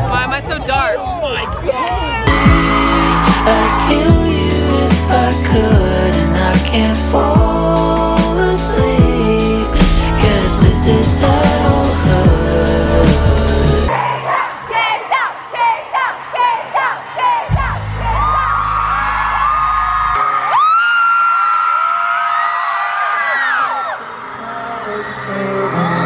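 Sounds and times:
person singing: 0:02.3 - 0:13.9
live band music: 0:09.4 - 0:13.9.

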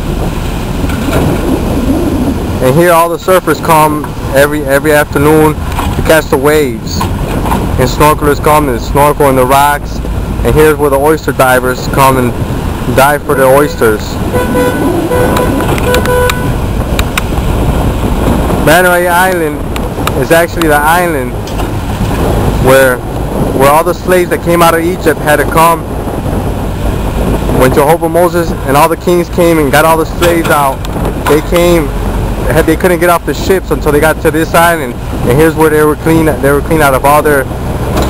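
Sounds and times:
low rumble: 0:00.0 - 0:38.0
waves breaking on beach: 0:00.0 - 0:38.0
wind on microphone: 0:00.0 - 0:38.0
horn tooting: 0:13.3 - 0:16.7.

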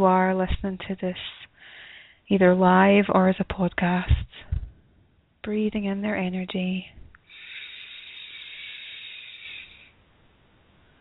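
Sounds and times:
woman breathing in: 0:01.5 - 0:02.2, 0:07.2 - 0:10.0.

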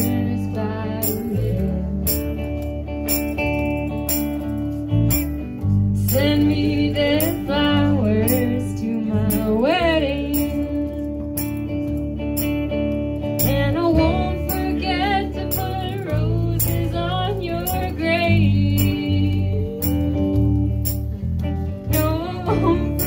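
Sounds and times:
woman singing: 0:00.0 - 0:02.6, 0:06.0 - 0:11.2, 0:13.4 - 0:20.8, 0:21.9 - 0:23.0
electric guitar strumming: 0:00.0 - 0:23.0
low bass notes: 0:00.0 - 0:23.0.

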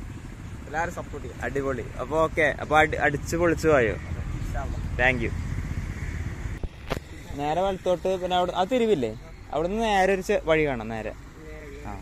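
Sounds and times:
man speaking: 0:07.0 - 0:12.0.

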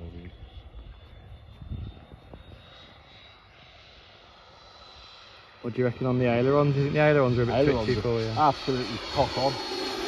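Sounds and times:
model jet high whine: 0:00.0 - 0:10.0.

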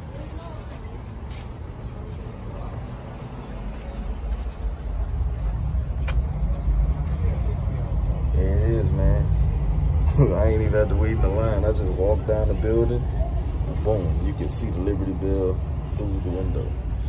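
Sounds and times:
low rumble of city noise: 0:00.0 - 0:17.0.

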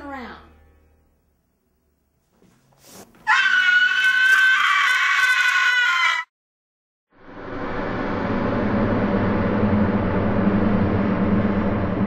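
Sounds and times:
long high-pitched scream: 0:03.2 - 0:06.3.

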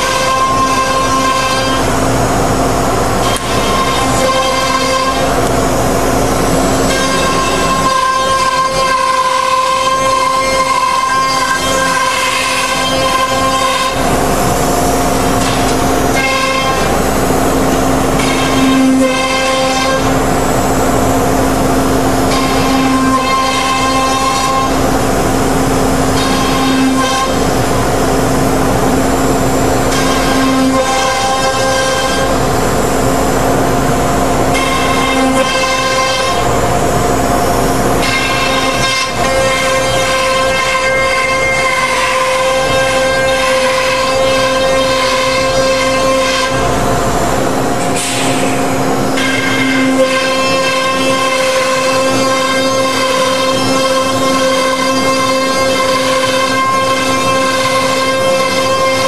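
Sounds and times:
router spindle high whine: 0:00.0 - 0:47.9.

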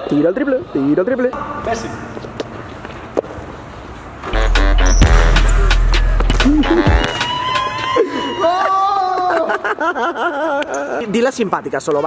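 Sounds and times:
sharp hit: 0:04.3 - 0:07.2
music with deep bass: 0:04.4 - 0:07.3.

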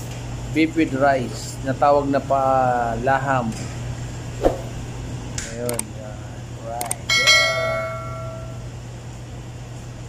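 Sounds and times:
bright bell ding: 0:07.1 - 0:08.6.

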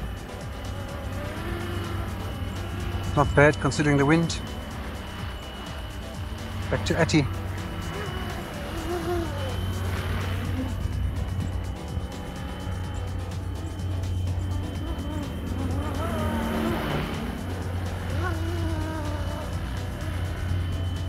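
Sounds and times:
rc helicopter rotor hum: 0:00.0 - 0:21.0.

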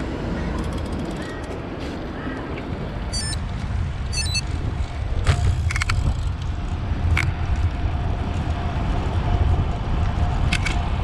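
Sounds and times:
tyres on road: 0:00.0 - 0:11.0
wind rumble on microphone: 0:00.0 - 0:11.0.

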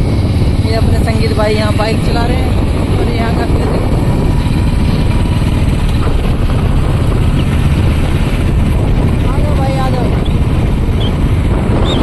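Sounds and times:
motorcycles rumbling: 0:00.0 - 0:12.0
wind rushing over microphone: 0:00.0 - 0:12.0.

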